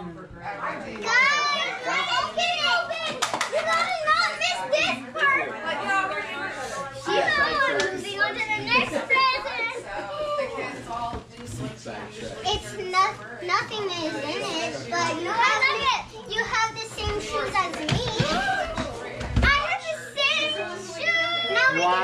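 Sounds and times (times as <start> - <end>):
young children talking excitedly: 0.6 - 11.4, 12.3 - 22.0.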